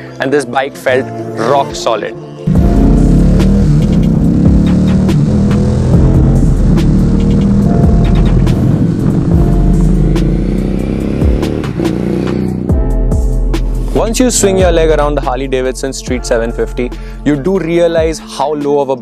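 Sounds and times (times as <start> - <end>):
music track: 0.0 - 19.0
motorcycle engine revving: 2.5 - 13.0.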